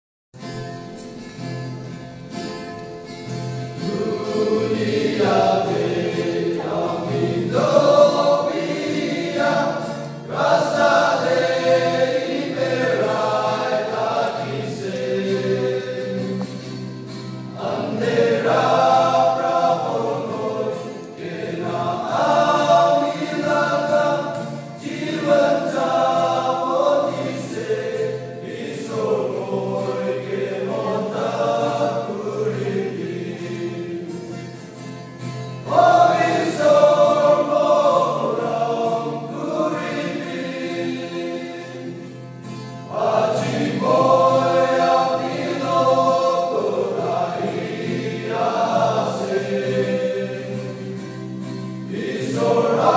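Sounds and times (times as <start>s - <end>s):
men's choir singing gospel: 3.6s - 52.9s.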